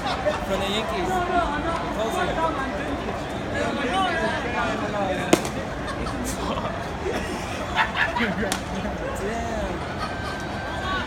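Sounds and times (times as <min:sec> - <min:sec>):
chatter of voices: 0:00.0 - 0:11.0
baseball hitting leather mitt: 0:05.3 - 0:05.7.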